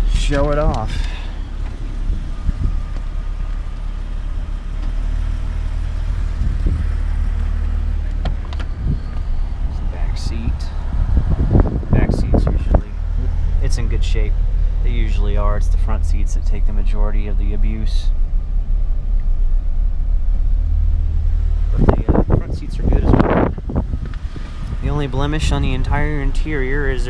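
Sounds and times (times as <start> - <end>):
car engine idling: 0.0 - 27.0.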